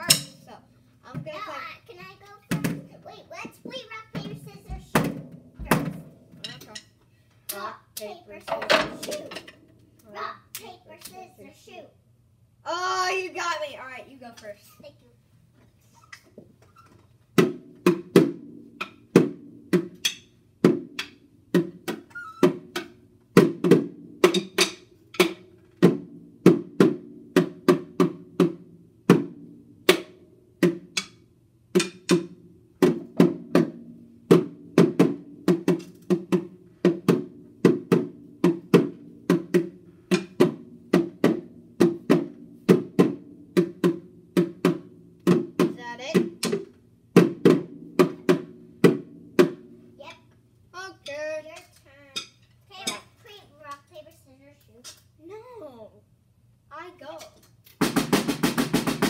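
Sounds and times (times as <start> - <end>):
child beating a drum: 0.0 - 0.5, 1.1 - 6.9, 17.3 - 49.8, 52.2 - 53.2, 57.8 - 59.0
child's voice: 0.0 - 6.8, 7.5 - 9.4, 10.0 - 12.0, 12.6 - 15.2, 45.7 - 46.4, 50.0 - 56.0, 56.7 - 57.5.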